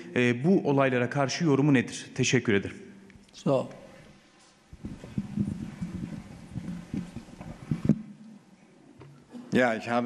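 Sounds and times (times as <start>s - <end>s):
microphone handling knocks: 4.7s - 8.2s.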